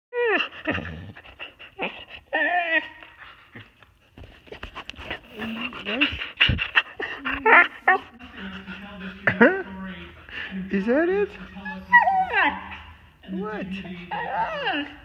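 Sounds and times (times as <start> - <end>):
dog whining howl-like calls: 11.6 - 12.9.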